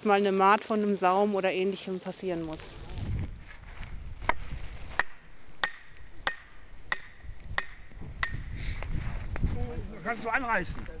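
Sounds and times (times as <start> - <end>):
axe head knocking wooden stake: 4.3 - 8.5.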